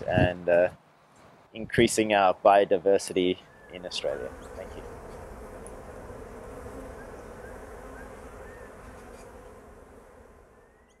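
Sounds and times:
bees buzzing: 2.0s - 11.0s.

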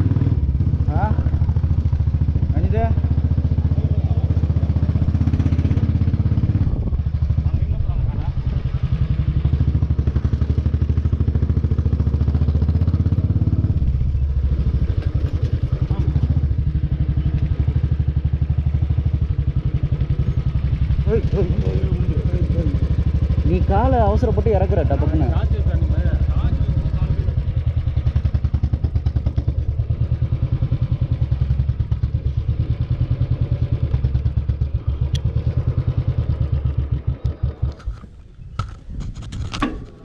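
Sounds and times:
motorcycle engine pulsing: 0.0s - 40.0s.

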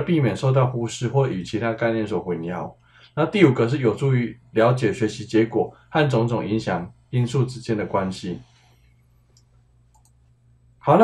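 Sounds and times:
low steady hum: 0.0s - 11.0s
faint short clicks: 9.3s - 10.3s.

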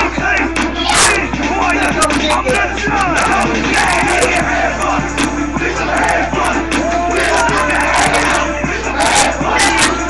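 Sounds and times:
children shouting and yelling: 0.0s - 4.8s, 5.8s - 10.0s.

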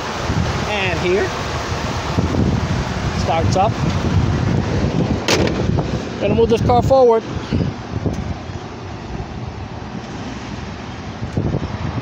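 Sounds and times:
engine idling low rumble: 0.0s - 12.0s.

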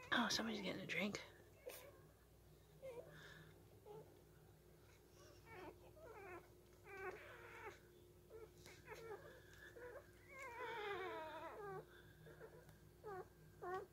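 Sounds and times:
puppies whining: 1.5s - 13.9s.

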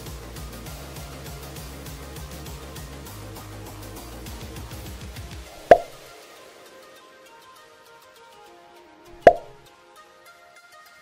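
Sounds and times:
soft background music: 0.0s - 11.0s
sharp click-pop: 5.6s - 6.0s, 9.2s - 9.6s.

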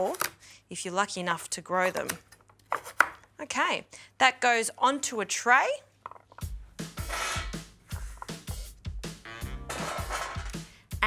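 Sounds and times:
background music with bass beat: 6.5s - 11.0s.

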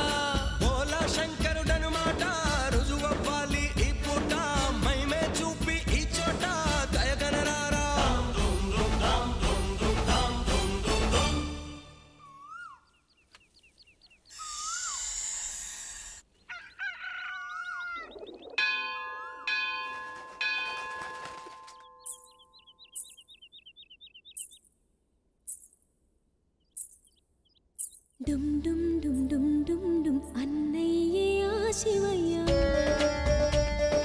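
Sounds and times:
birds chirping: 12.0s - 20.7s, 21.5s - 28.2s
burst of hiss: 14.3s - 16.2s
temple bell ringing: 18.6s - 22.3s.

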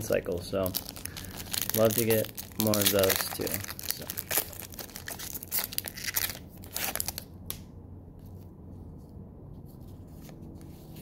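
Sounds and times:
foil wrapper crinkling and tearing: 0.6s - 7.3s.

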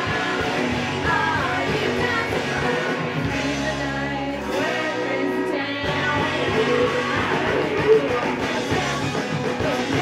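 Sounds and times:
live rock band playing: 0.0s - 10.0s
women singing: 0.0s - 10.0s.

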